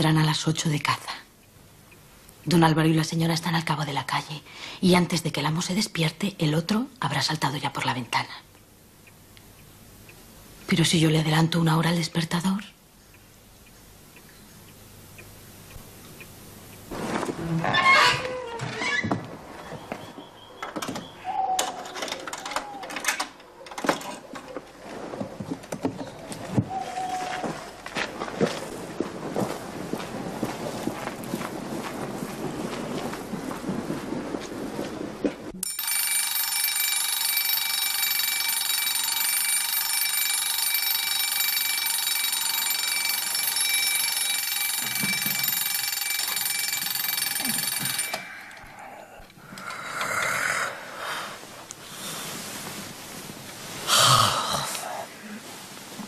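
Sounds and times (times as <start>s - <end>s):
crackly hiss: 12.8s - 17.9s, 27.7s - 35.5s, 48.6s - 56.0s
alarm clock bell ringing: 35.6s - 48.8s.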